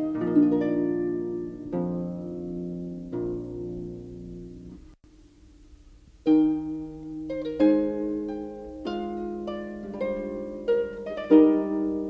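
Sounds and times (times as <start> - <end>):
plucked harp chords: 0.0 - 5.0, 6.2 - 12.0.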